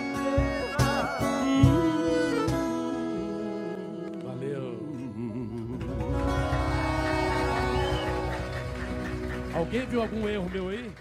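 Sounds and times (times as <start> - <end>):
band playing instrumental music: 0.0 - 4.7, 5.6 - 11.0.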